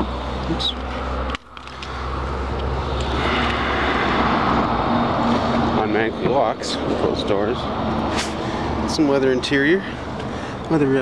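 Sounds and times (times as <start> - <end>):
street traffic rushing: 0.0 - 11.0.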